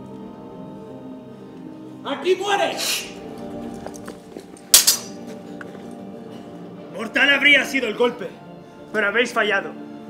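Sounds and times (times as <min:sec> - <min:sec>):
background music: 0:00.0 - 0:10.0
swords clashing: 0:04.7 - 0:05.2.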